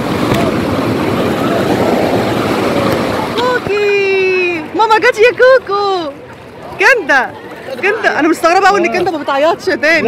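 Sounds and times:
faint voices: 0:00.0 - 0:10.0
sea surf washing: 0:00.0 - 0:10.0.

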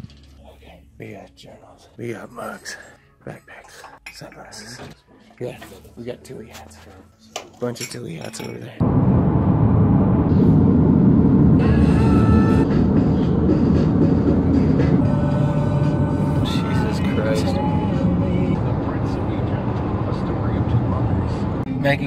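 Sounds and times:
car road and engine rumble: 0:08.8 - 0:22.0
music with singing voice: 0:11.6 - 0:22.0.

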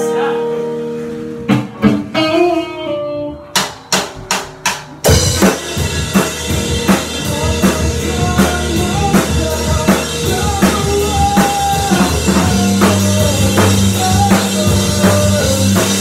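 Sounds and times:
electric guitar notes: 0:00.0 - 0:16.0
live rock band playing: 0:00.0 - 0:16.0
drum hits: 0:03.5 - 0:16.0.

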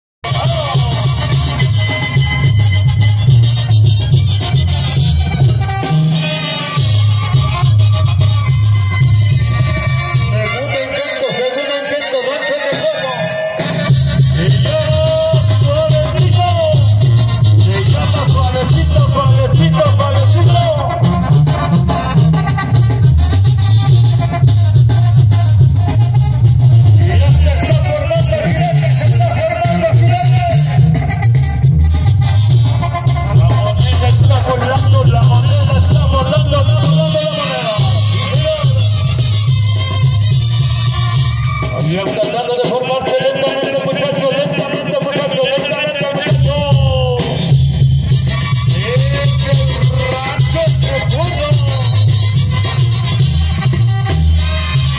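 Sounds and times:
brass band music: 0:00.2 - 0:54.9
tuba bass line: 0:00.2 - 0:54.9
person speaking: 0:33.3 - 0:39.0.

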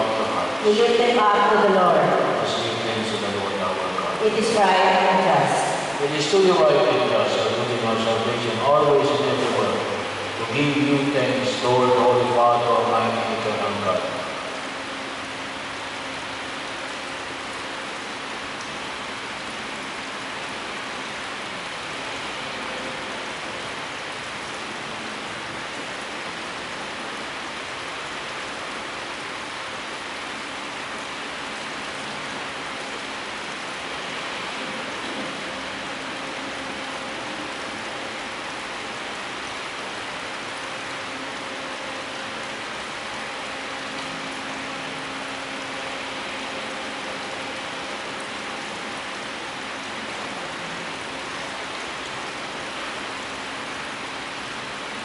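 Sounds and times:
steady hiss: 0:00.0 - 0:55.0.

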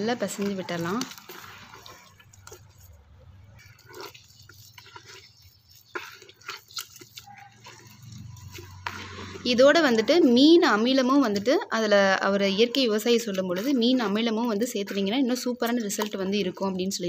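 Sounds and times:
hand squelching wet mash: 0:00.0 - 0:17.0.

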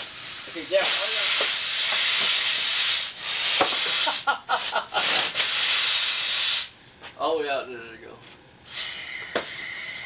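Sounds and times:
compressed air hissing: 0:00.0 - 0:06.8, 0:08.6 - 0:10.0.

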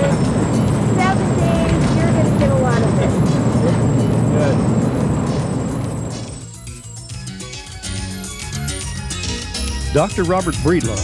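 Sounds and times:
voices: 0:00.0 - 0:04.8
vehicle road and wind rumble: 0:00.0 - 0:06.6.

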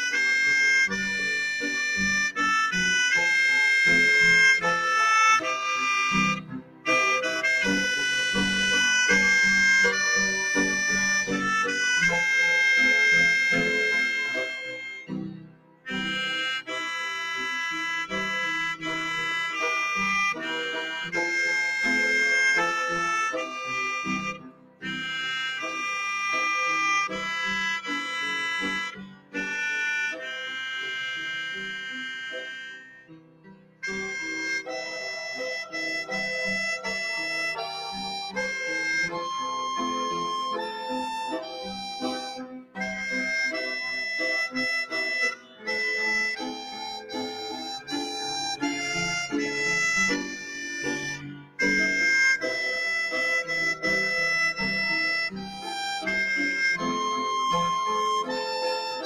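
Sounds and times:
keyboard accompaniment: 0:00.0 - 0:59.0
melodica slow melody: 0:00.0 - 0:59.0.

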